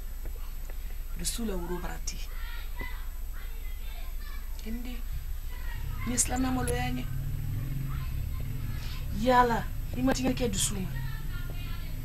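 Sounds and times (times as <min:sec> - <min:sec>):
steady low hum: 0:00.0 - 0:12.0
woman speaking: 0:01.2 - 0:02.5, 0:03.5 - 0:12.0.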